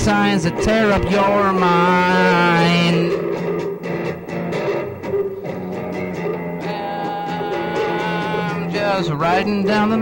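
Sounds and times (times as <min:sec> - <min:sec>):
guitar strummed: 0:00.0 - 0:10.0.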